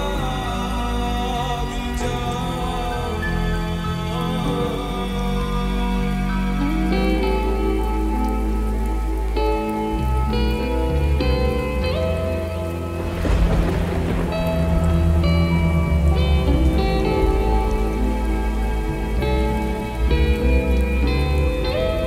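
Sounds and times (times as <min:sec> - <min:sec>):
noise swell with deep rumble: 0:00.0 - 0:22.0
rain sound: 0:00.0 - 0:22.0
slowed lofi ballad remix: 0:00.0 - 0:22.0.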